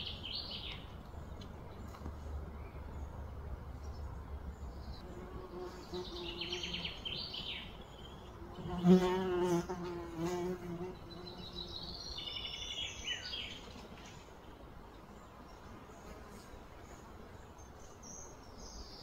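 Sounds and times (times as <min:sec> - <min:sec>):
insect buzzing: 0:05.0 - 0:07.6, 0:08.2 - 0:11.9.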